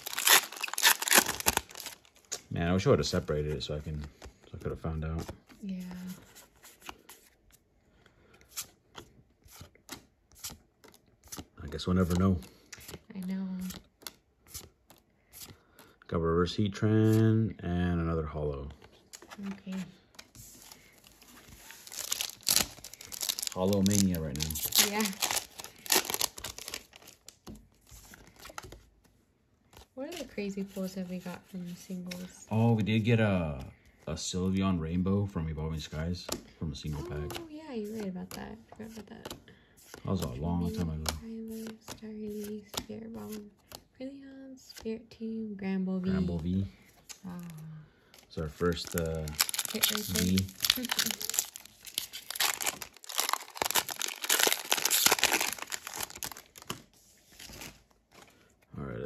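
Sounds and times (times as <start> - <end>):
foil wrapper crinkling: 0.0 - 2.4, 20.6 - 28.8, 37.0 - 38.0, 48.3 - 58.4
cards rustling in fingers: 3.4 - 16.0, 18.7 - 32.8, 35.7 - 43.9, 46.2 - 58.5.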